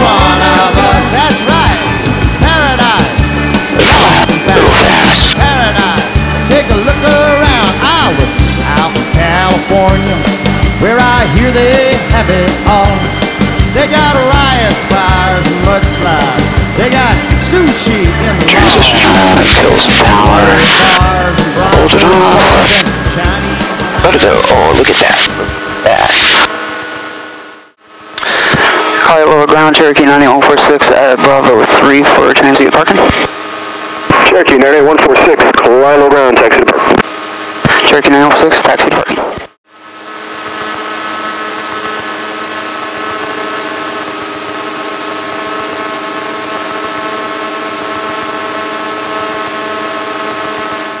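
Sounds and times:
background song: 0.0 - 3.4
light aircraft engine and propeller: 0.0 - 51.0.

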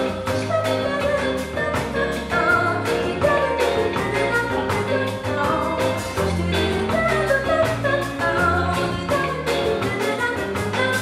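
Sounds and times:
bass guitar: 0.0 - 11.0
drum kit beat: 0.0 - 11.0
electric guitars: 0.0 - 11.0
woman singing: 0.0 - 11.0.

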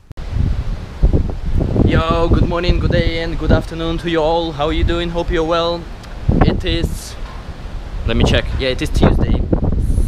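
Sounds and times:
wind buffeting microphone: 0.2 - 10.0
man's voice: 1.8 - 7.2, 8.0 - 9.6.

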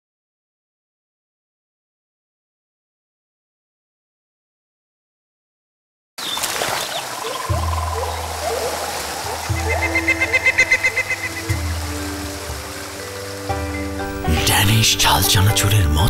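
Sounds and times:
stream water rushing: 6.2 - 16.0
sustained low music notes: 7.5 - 16.0.

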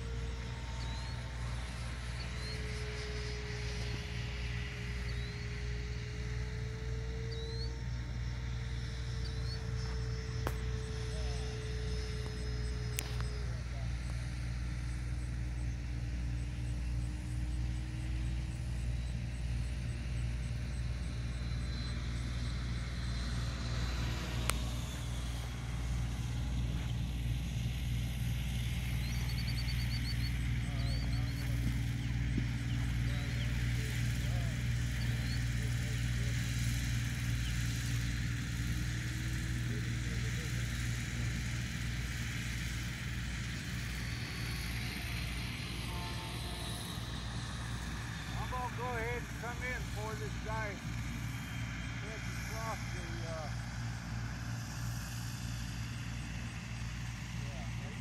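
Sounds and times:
constant low hum: 0.0 - 58.0
model jet rushing whine: 0.0 - 58.0.

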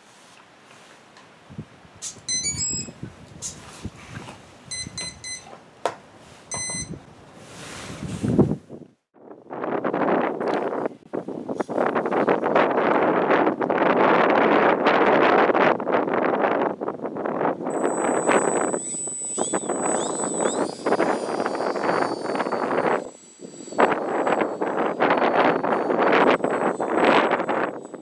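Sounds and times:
wind buffeting microphone: 1.4 - 2.0, 2.6 - 5.4, 7.8 - 28.0
electric motor high whine: 17.7 - 28.0.

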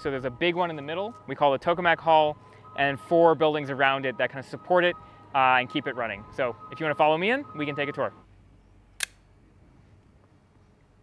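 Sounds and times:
sharp click: 9.0 - 9.3.

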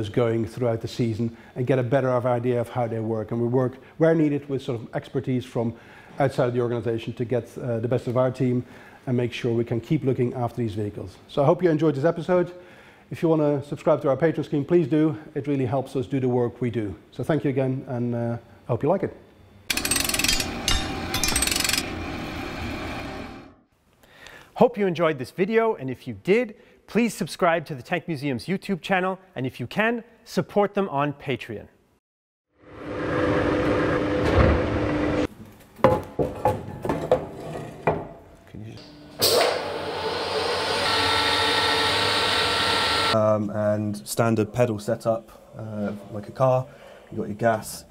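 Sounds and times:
rapid mechanical rattle: 19.7 - 23.2
metal lathe running: 19.7 - 23.6, 39.2 - 43.2
workshop knocks: 35.8 - 38.1.

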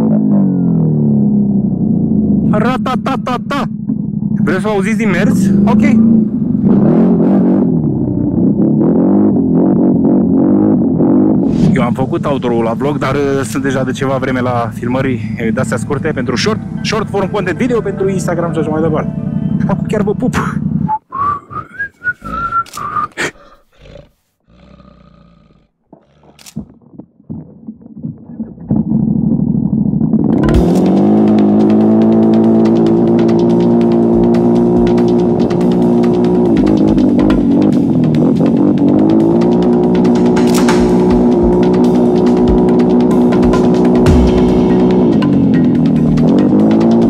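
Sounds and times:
atv engine revving: 0.0 - 11.6, 12.9 - 21.0, 29.1 - 47.0
person whistling: 20.9 - 23.4.

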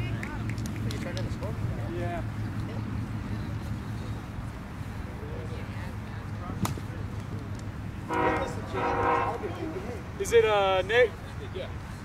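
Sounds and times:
horn blasts: 8.0 - 9.8.

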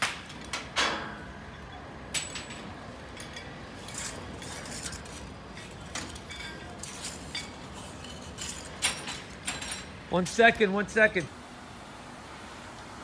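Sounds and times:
metal rigging clinking on steel: 2.1 - 10.1.

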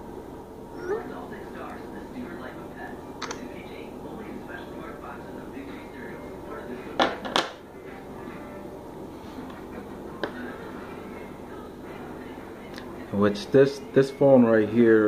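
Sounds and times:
faint background talk: 0.7 - 14.4.

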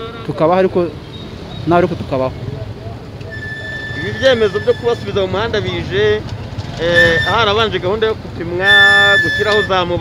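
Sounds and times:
street and traffic rumble: 0.0 - 10.0.

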